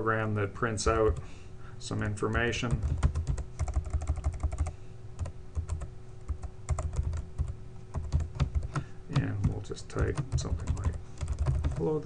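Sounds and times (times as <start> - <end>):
faint steady hum: 0.0 - 12.0
keyboard typing: 2.3 - 12.0.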